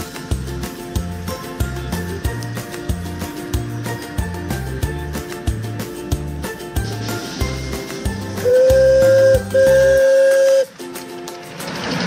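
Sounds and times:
background music: 0.0 - 12.0
steam locomotive whistle blasts: 8.3 - 10.8.

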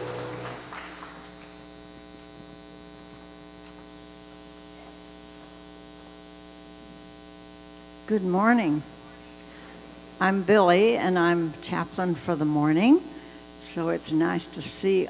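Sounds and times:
sung note: 0.0 - 0.8
electrical mains hum: 0.0 - 15.0.

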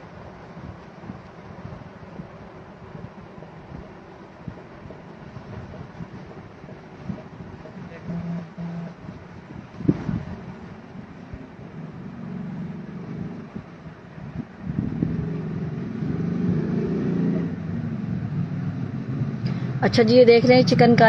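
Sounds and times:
low background rumble: 17.3 - 21.0.

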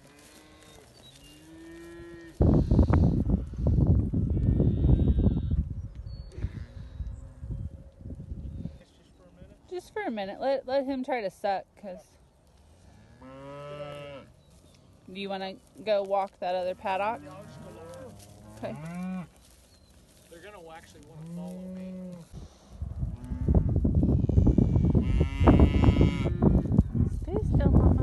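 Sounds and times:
cow mooing: 16.8 - 19.3.

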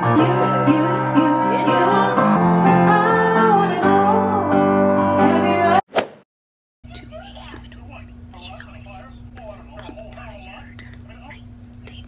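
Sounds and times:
steady low hum: 6.9 - 12.0
woman whispering: 10.4 - 12.0.

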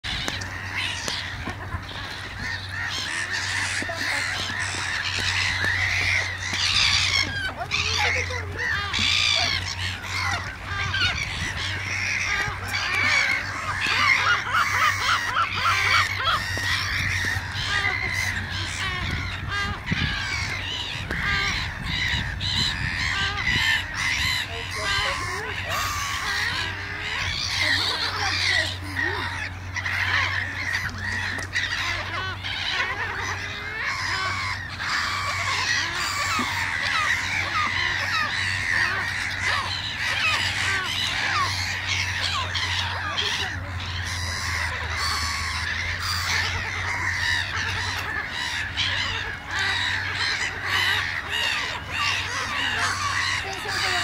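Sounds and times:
gulls calling: 0.0 - 54.0.

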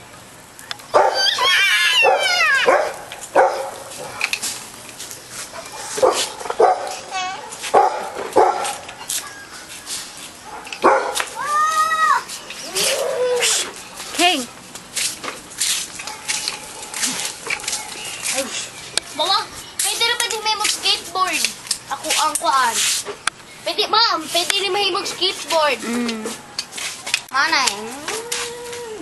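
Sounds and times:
dog barking and yelping: 0.9 - 4.2, 5.6 - 8.9, 10.5 - 11.5
dog whining: 1.0 - 2.9, 12.1 - 13.7, 27.8 - 29.0.

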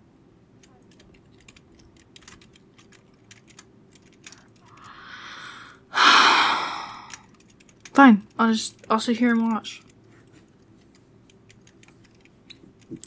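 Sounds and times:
computer keyboard clicks: 0.6 - 4.9, 7.1 - 10.0, 10.8 - 13.0
woman breathing in: 4.7 - 7.3
woman sighing loudly: 4.8 - 7.2.

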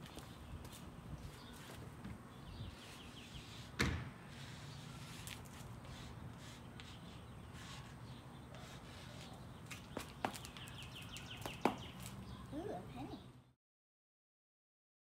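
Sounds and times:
bird chirping: 5.8 - 13.6.

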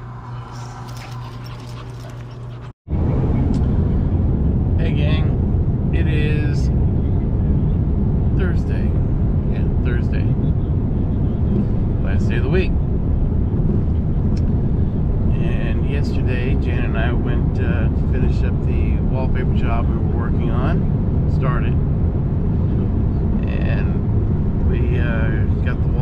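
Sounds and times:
low hum: 0.0 - 26.0
truck cab road and engine rumble: 0.0 - 26.0.

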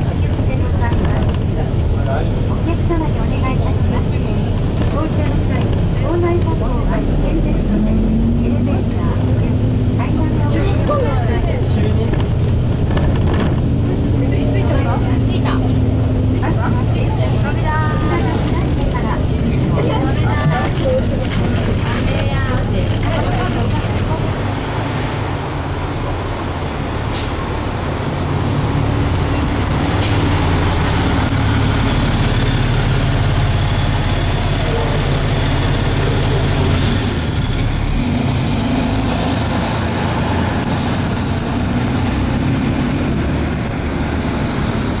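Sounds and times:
diesel bus engine idling: 0.0 - 45.0.

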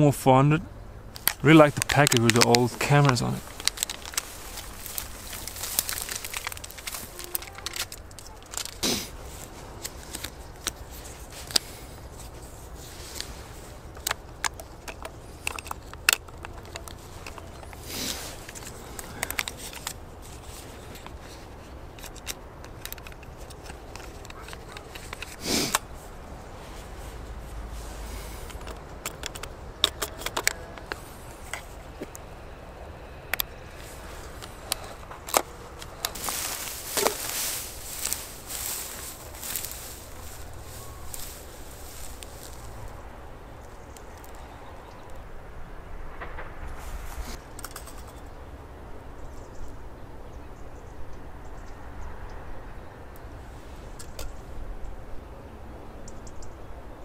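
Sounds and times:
foil wrapper crinkling: 1.2 - 12.4, 33.8 - 42.9
footsteps through dry grass: 1.3 - 14.0, 16.9 - 21.7, 23.8 - 28.9, 33.7 - 43.1.

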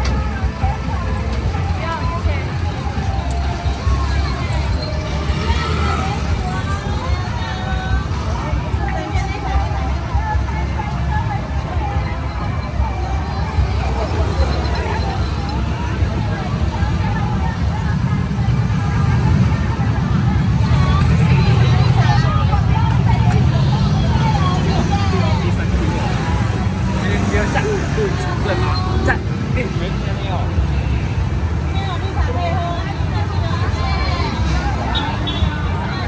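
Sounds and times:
many people talking: 0.0 - 36.0
motor traffic rumble: 0.0 - 36.0.

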